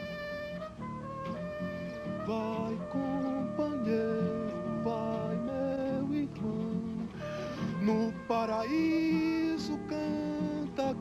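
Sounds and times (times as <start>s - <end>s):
acoustic guitar and instruments: 0.0s - 11.0s
person singing: 1.9s - 11.0s.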